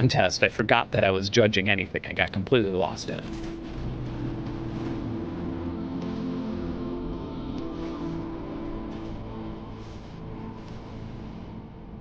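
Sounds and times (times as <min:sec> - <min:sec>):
synth drone: 0:03.2 - 0:12.0.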